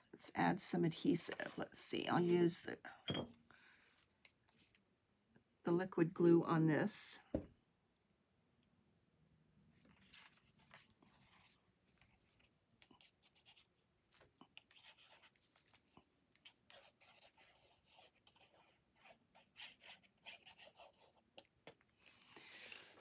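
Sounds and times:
glue bottle scratching on card: 0:14.5 - 0:15.6, 0:16.3 - 0:21.2.

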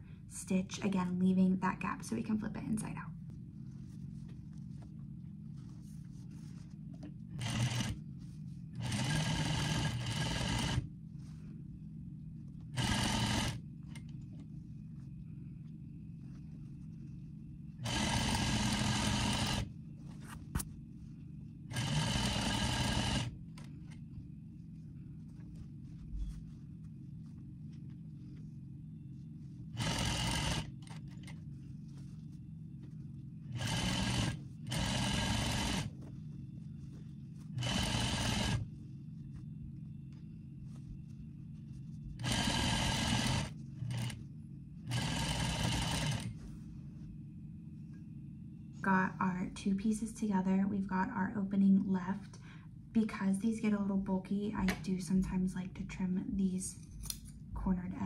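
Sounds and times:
steady low hum: 0:00.0 - 0:58.0
sewing machine stitching: 0:07.4 - 0:08.0, 0:08.8 - 0:10.9, 0:12.8 - 0:13.6, 0:17.8 - 0:19.7, 0:21.7 - 0:23.7, 0:29.8 - 0:31.4, 0:33.5 - 0:35.9, 0:37.6 - 0:38.6, 0:42.2 - 0:44.2, 0:44.9 - 0:46.3.

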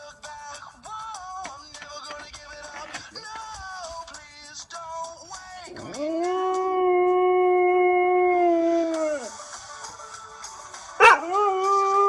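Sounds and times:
song playing: 0:00.0 - 0:12.0
dog howling: 0:05.7 - 0:09.4, 0:11.0 - 0:12.0.

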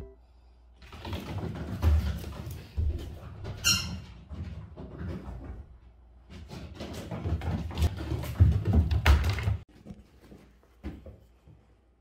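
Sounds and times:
bumps and rustling on floor: 0:01.0 - 0:11.7.

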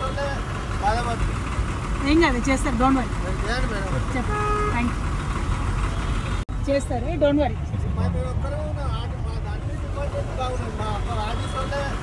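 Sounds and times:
vehicle engines idling: 0:00.0 - 0:12.0.

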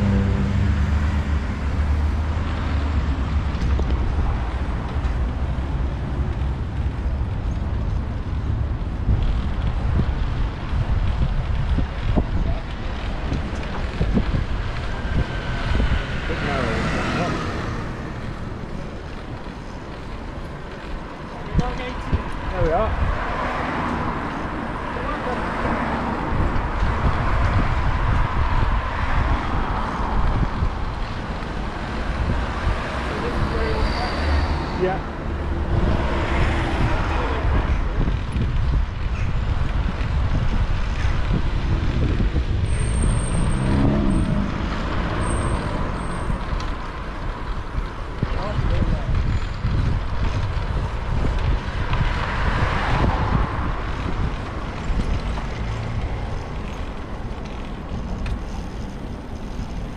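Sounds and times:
road traffic passing: 0:00.0 - 0:59.9
wind noise on microphone: 0:00.0 - 0:59.9.

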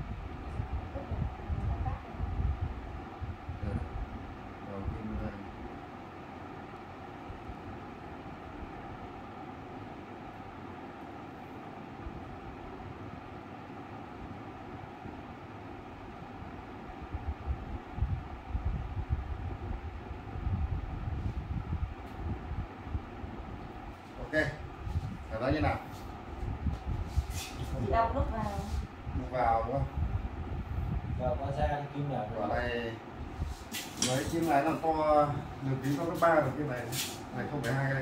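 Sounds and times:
wind rumbling on microphone: 0:00.0 - 0:05.6, 0:16.4 - 0:37.0
steady mechanical hum: 0:00.0 - 0:38.0.

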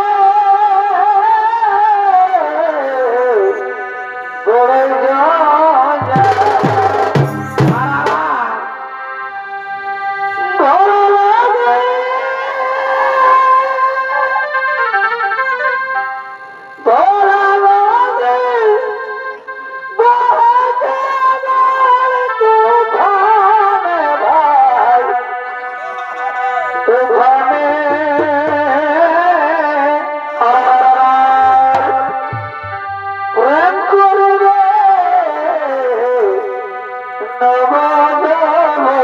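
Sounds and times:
shehnai playing wavering melody: 0:00.0 - 0:39.0.

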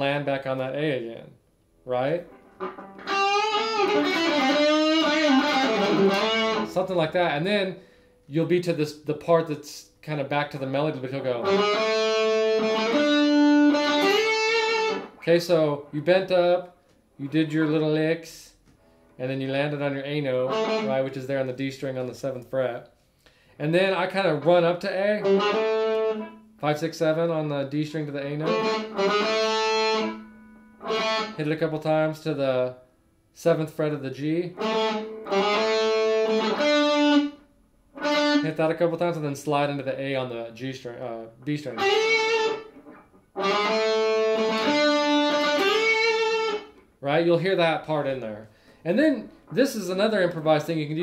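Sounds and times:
electric guitar sustained notes: 0:02.3 - 0:06.8, 0:11.4 - 0:16.0, 0:25.2 - 0:26.3, 0:28.4 - 0:31.4, 0:34.6 - 0:37.3, 0:43.4 - 0:46.7.

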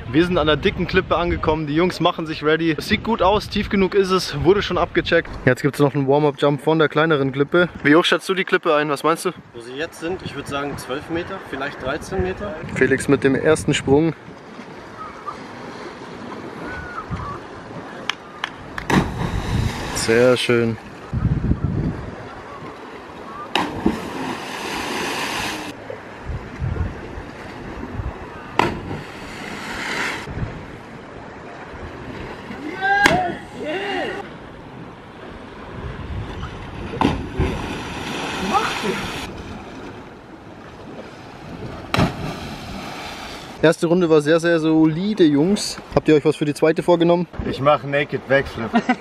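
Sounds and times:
sea: 0:00.0 - 0:49.0
wind: 0:00.0 - 0:49.0
wind on microphone: 0:11.9 - 0:14.2, 0:16.5 - 0:18.0, 0:18.6 - 0:32.3, 0:34.3 - 0:40.1
diver splashing into sea: 0:18.7 - 0:20.4, 0:23.3 - 0:25.8, 0:27.5 - 0:30.3, 0:36.6 - 0:40.0, 0:40.9 - 0:43.6
voices shouting: 0:32.6 - 0:34.4, 0:38.3 - 0:39.3.

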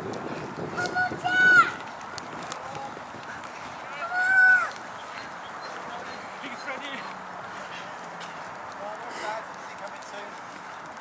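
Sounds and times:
high-pitched shout: 0:00.8 - 0:01.8, 0:04.0 - 0:04.7.

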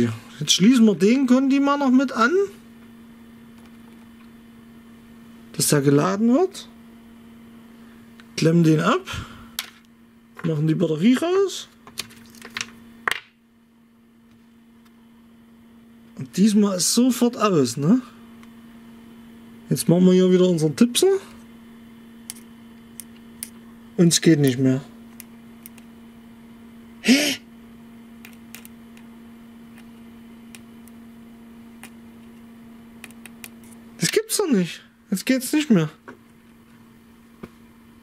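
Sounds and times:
faint steady hum: 0:00.0 - 0:38.0.

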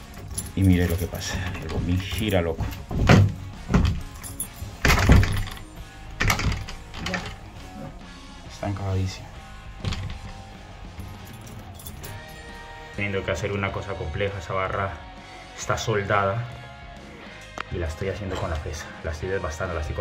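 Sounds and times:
background music: 0:00.0 - 0:20.0
key knocking in door lock: 0:01.6 - 0:05.6.

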